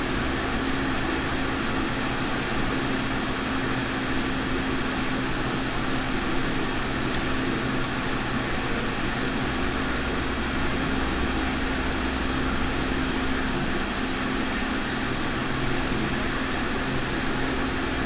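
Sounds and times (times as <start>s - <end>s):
fan mechanical hum: 0.0s - 18.0s.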